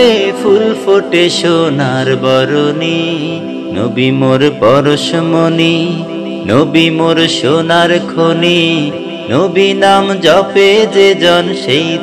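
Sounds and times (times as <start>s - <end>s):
man singing devotional song: 0.0s - 12.0s.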